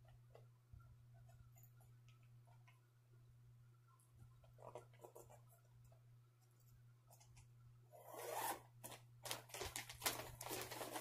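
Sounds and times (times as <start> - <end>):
steady low hum: 0.0 - 9.3.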